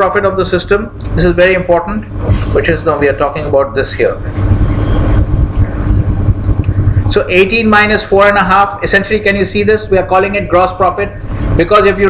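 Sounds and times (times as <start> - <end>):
person speaking: 0.0 - 4.7, 5.5 - 12.0
loud uneven low rumble: 0.0 - 12.0.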